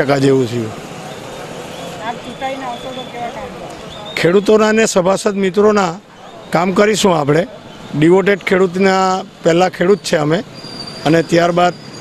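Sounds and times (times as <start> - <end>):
faint voices talking: 0.0 - 10.4
steady outdoor hum: 0.0 - 12.0.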